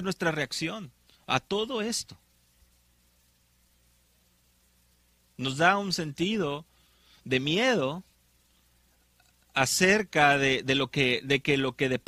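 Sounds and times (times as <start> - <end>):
man speaking: 0.0 - 2.2, 5.4 - 6.7, 7.3 - 8.1, 9.5 - 12.0
faint steady low hum: 0.0 - 12.0.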